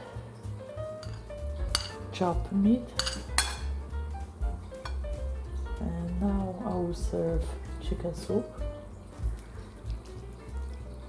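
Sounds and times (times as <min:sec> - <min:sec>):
quiet background music: 0:00.0 - 0:11.0
metal spoon clinking china: 0:01.0 - 0:02.1, 0:03.0 - 0:03.7.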